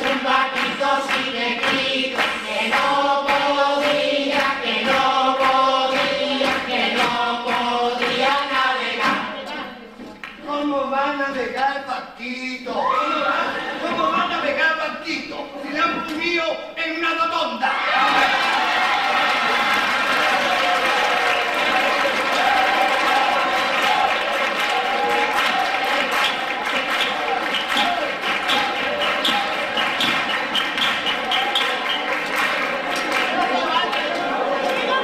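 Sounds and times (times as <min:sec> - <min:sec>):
voices echoing in a hall: 0:00.0 - 0:35.0.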